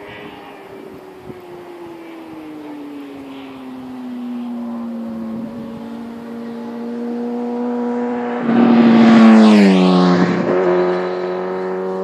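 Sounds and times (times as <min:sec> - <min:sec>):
motorcycle engine approaching: 0:00.0 - 0:12.0.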